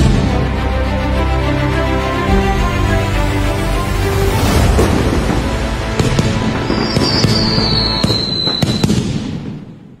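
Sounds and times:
background music: 0.0 - 9.7
fireworks bangs and crackles: 4.4 - 10.0
high falling whistle: 6.6 - 8.9.

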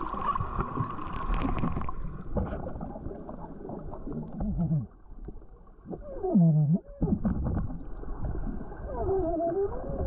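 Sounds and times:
water moving and bubbling: 0.0 - 10.0.

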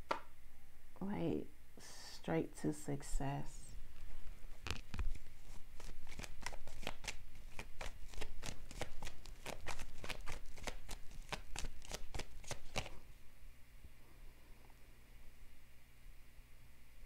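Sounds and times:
cards being shuffled by hand: 3.9 - 13.0.

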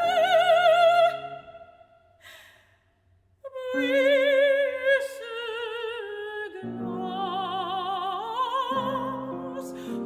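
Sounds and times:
short breath: 2.2 - 3.0.

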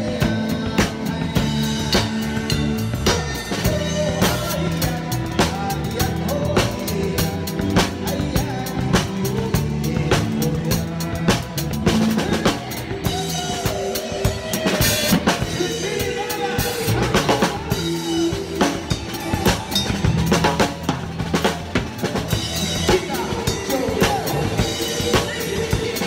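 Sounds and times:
drum kit beat: 0.0 - 26.0
live band music: 0.0 - 26.0.

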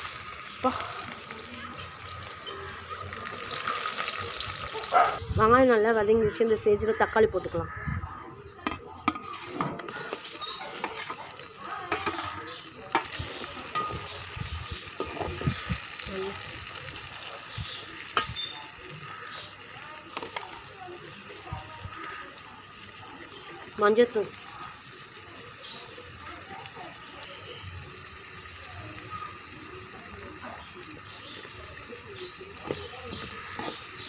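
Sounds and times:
onions and tomatoes frying: 0.0 - 34.0
metal ladle scraping a pan: 9.0 - 14.3, 32.7 - 34.0.

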